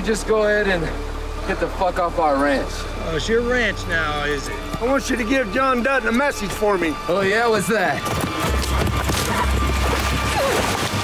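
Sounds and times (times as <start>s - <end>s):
film score music: 0.0s - 11.0s
horses galloping: 4.2s - 11.0s.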